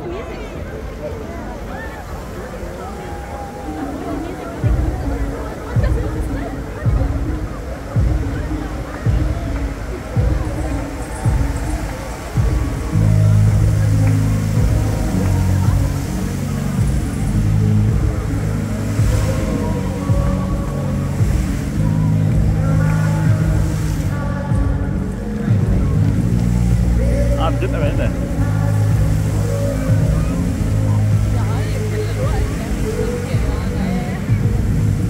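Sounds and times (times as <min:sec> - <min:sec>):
fountain water spray rushing: 0:00.0 - 0:35.0
show music over loudspeakers: 0:03.0 - 0:35.0.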